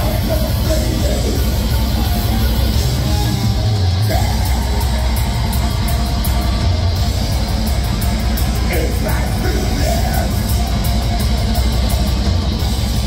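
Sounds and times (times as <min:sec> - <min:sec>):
heavy rock band playing: 0:00.0 - 0:13.0.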